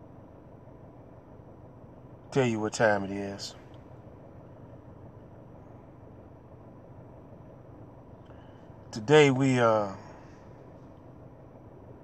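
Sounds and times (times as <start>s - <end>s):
faint low hum in car cabin: 0.0s - 12.0s.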